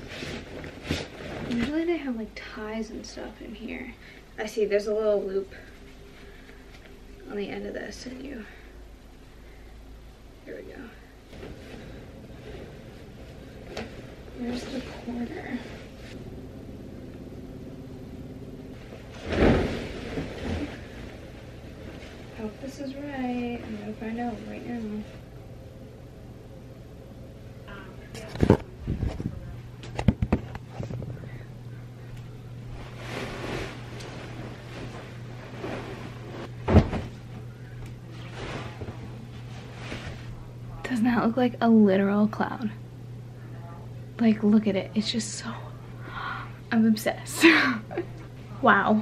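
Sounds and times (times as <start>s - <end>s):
fabric rustling: 0.0s - 2.1s, 11.0s - 16.2s, 18.7s - 25.3s, 32.6s - 40.5s
duvet cover being shaken out: 18.8s - 22.6s, 32.8s - 37.3s, 38.1s - 40.4s.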